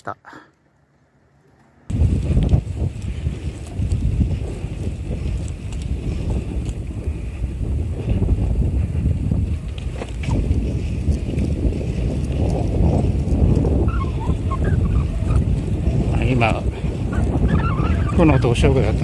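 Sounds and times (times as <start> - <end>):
wind buffeting microphone: 1.9 - 19.0.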